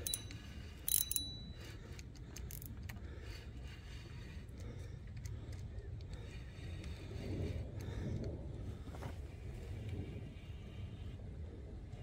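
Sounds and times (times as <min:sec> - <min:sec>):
sharp metallic click with ring: 0:00.0 - 0:01.6
steady low rumble: 0:00.0 - 0:12.0.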